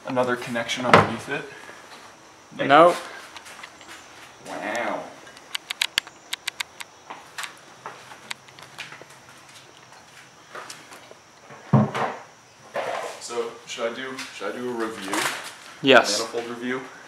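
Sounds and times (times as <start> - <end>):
light sharp clicks: 4.7 - 7.6.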